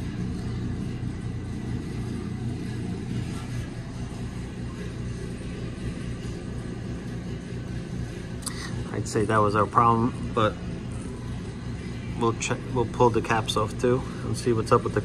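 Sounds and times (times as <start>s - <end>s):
constant hum: 0.0s - 15.0s.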